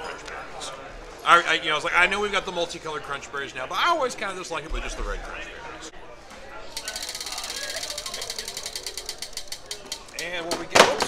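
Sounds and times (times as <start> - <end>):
prize wheel clicker ticking: 6.8 - 10.6.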